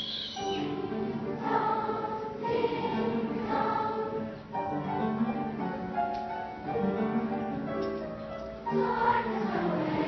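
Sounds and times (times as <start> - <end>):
choir singing held chords: 0.0 - 4.6, 8.6 - 10.0.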